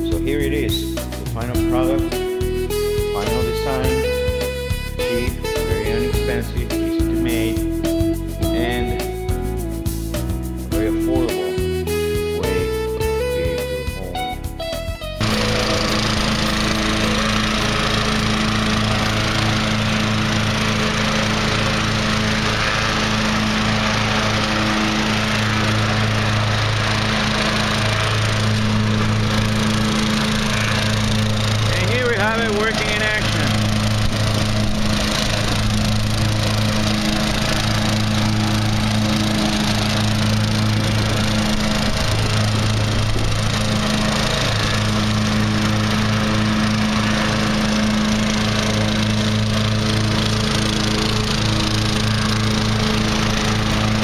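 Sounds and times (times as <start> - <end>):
lawn tractor engine running: 0.0 - 54.0.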